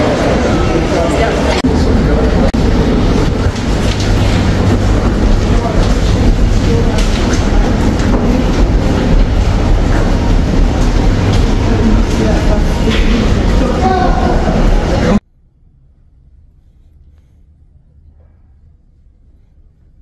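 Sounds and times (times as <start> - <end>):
faint voices: 0.0 - 15.2
loud low rumble: 0.0 - 16.5.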